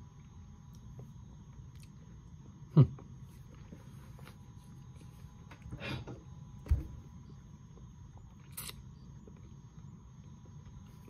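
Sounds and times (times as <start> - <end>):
faint electrical whine: 0.0 - 11.0.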